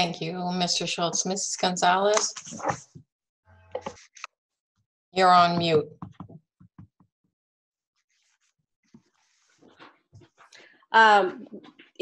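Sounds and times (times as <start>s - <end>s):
person speaking: 0.0s - 3.0s, 3.6s - 4.3s, 5.2s - 6.4s
microphone clicks and rustling: 2.1s - 3.0s, 3.6s - 4.3s, 5.5s - 7.0s.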